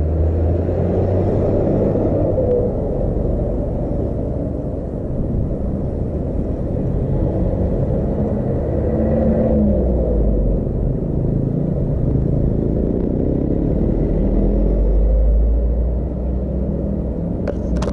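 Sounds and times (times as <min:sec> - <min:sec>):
engine revving: 0:00.0 - 0:04.8, 0:07.0 - 0:17.9
road traffic rumble: 0:00.0 - 0:17.9.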